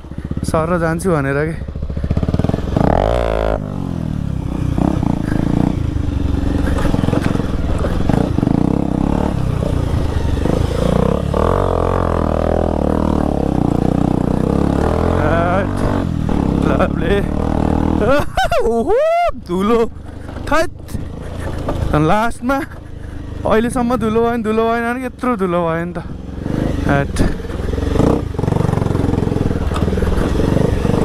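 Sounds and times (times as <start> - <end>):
motorcycle engine under load: 0.0 - 18.8, 19.4 - 31.0.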